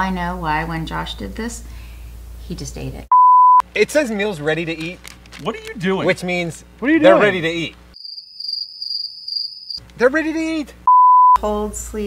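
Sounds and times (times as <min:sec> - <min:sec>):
crickets chirping: 0:07.9 - 0:09.8.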